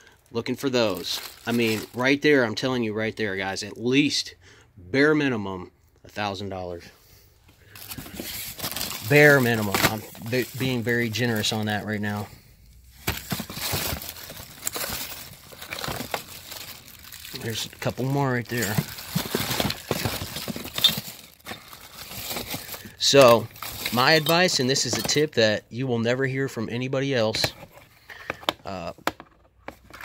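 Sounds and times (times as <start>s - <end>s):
plastic bags rustling and crinkling: 0.8s - 2.2s, 7.6s - 12.2s, 12.8s - 25.4s
items clicking and knocking: 13.0s - 17.0s, 17.8s - 22.8s, 23.6s - 25.3s, 27.4s - 30.0s.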